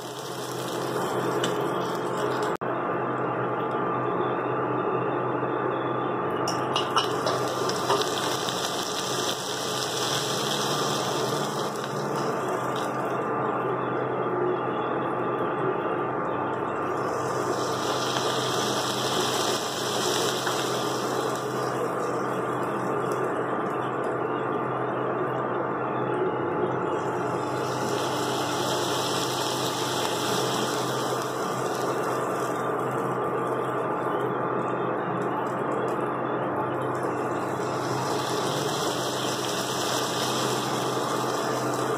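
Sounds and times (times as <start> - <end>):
food sizzling in a pan: 0.0 - 2.6, 6.8 - 13.1, 16.9 - 22.8, 27.2 - 32.7, 37.2 - 41.9.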